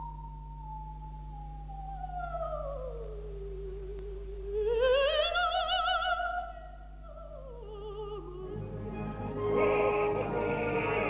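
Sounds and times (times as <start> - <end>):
operatic soprano singing: 4.5 - 11.0.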